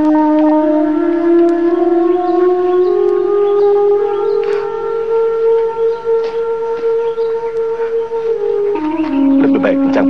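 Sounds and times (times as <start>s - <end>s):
wind instrument holding long note: 0.0s - 10.0s.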